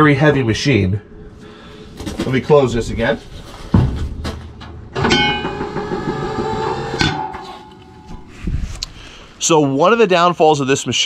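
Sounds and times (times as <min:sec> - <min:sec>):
soft thump: 0:03.7 - 0:04.4
metal chute door clunk: 0:03.7 - 0:08.3
sharp metal clank: 0:04.9 - 0:08.3.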